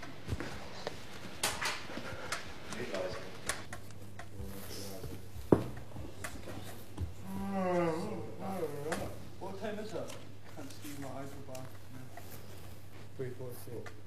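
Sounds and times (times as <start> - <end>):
wavering vocal sound: 7.2 - 9.2.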